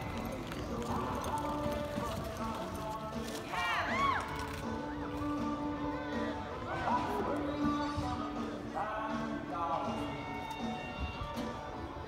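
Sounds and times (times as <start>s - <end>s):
horse hoofbeats on dirt: 0.0s - 3.7s
background music: 0.0s - 12.0s.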